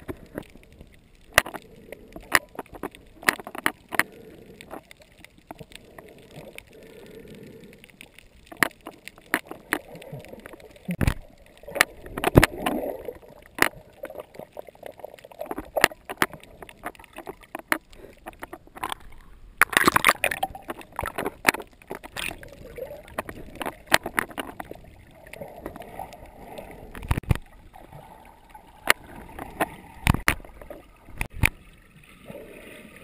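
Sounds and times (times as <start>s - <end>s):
water sloshing and splashing: 0.0s - 7.0s, 7.8s - 33.0s.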